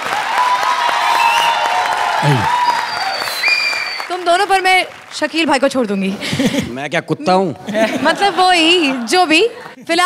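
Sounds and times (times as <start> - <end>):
audience applauding: 0.0 - 6.0
held vocal tones: 2.2 - 2.5.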